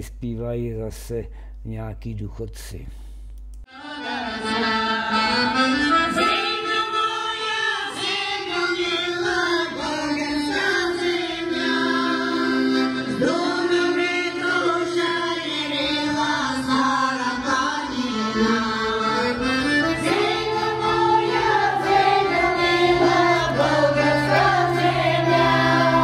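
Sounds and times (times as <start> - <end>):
accordion: 3.7 - 26.0
women's choir singing: 3.7 - 26.0.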